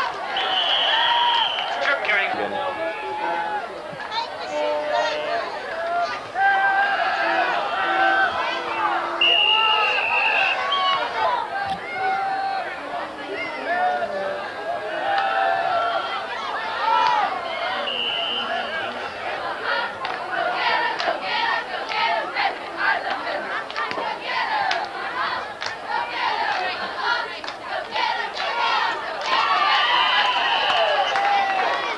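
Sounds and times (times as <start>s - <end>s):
people clapping: 0.0s - 2.8s, 15.0s - 15.5s, 16.8s - 31.9s
crowd yelling and cheering: 0.0s - 31.9s.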